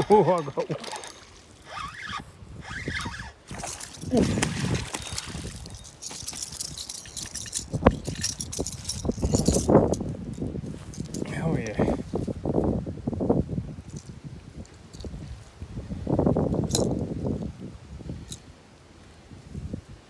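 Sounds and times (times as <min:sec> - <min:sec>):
wind rumbling on microphone: 0:00.0 - 0:20.0
fish flopping on grass: 0:03.5 - 0:07.5.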